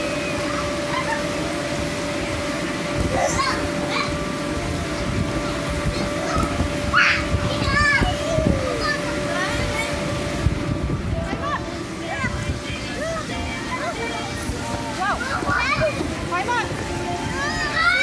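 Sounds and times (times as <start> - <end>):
children calling out: 0.0 - 1.6, 3.0 - 4.4, 5.4 - 10.3, 17.2 - 18.0
steady hum: 0.0 - 18.0.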